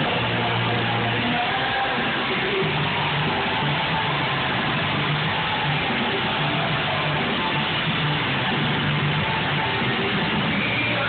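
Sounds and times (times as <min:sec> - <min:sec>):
loud rock music over pa: 0:00.0 - 0:11.0.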